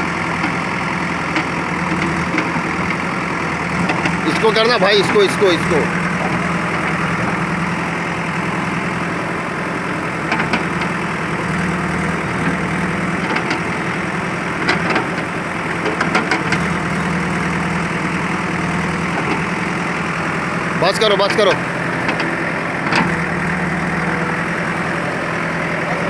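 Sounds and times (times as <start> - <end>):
bucket working earth and rubble: 0.0 - 26.0
diesel engine running: 0.0 - 26.0.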